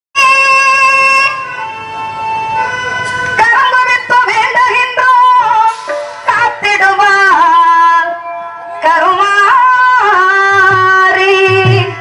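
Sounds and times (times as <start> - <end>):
wind instrument melody: 0.2 - 12.0.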